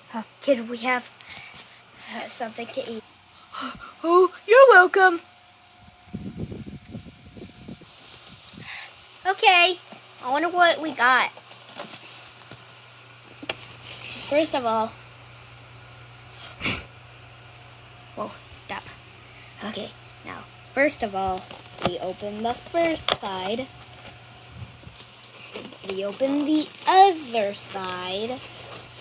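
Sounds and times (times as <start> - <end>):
steady low hum: 0.0 - 29.0
plastic toy handling: 24.9 - 27.2
paper box rustling: 24.9 - 29.0.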